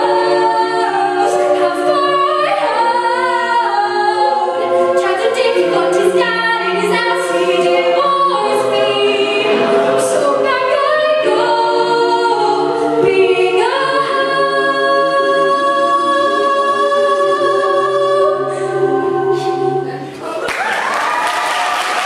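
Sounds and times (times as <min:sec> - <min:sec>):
a cappella group singing: 0:00.0 - 0:20.2.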